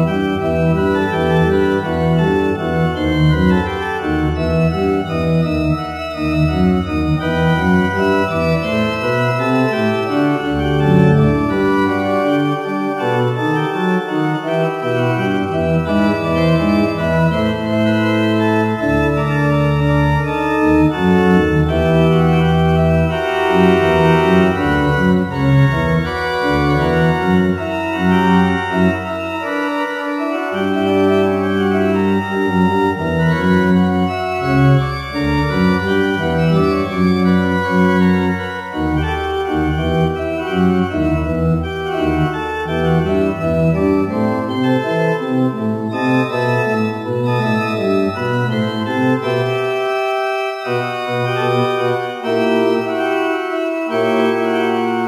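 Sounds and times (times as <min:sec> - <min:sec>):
held organ bass line: 0:00.0 - 0:55.0
organ music: 0:00.0 - 0:55.0.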